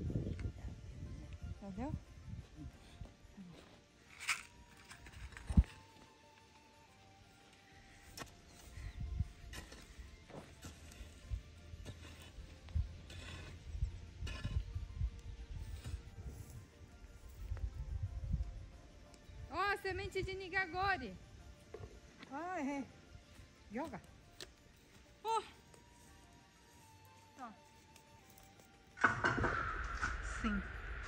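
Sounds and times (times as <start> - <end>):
quiet background music: 0.0 - 31.0
hoe chopping and scraping soil: 7.9 - 14.9, 15.5 - 16.6.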